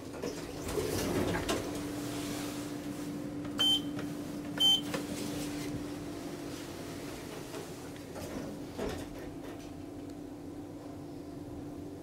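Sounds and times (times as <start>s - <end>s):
short electronic beeps: 3.6s - 3.9s.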